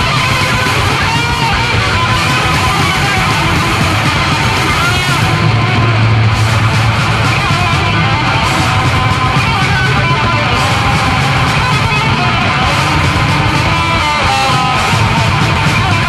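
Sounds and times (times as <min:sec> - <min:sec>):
thrash metal instrumental: 0:00.0 - 0:16.0.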